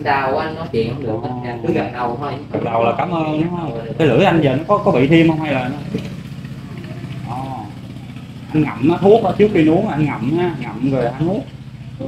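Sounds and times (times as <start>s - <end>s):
engine idling: 0.0s - 12.0s.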